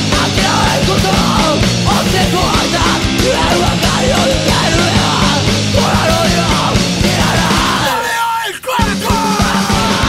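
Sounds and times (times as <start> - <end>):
hardcore punk song: 0.0 - 10.0
person yelling vocals: 0.2 - 10.0.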